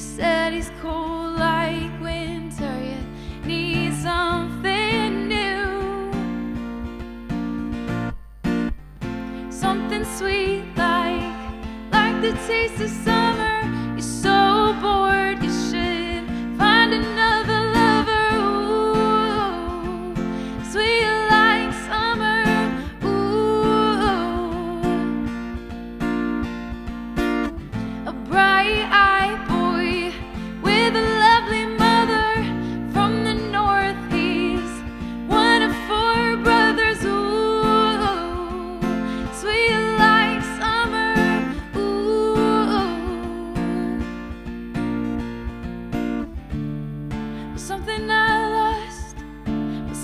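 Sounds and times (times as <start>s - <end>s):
woman singing: 0.0s - 6.6s, 9.4s - 25.7s, 27.6s - 44.6s, 47.4s - 50.0s
strummed acoustic guitar: 0.0s - 50.0s.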